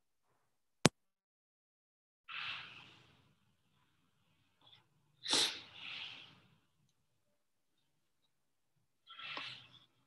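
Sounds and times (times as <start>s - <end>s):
sharp burst of breath: 5.2s - 5.8s.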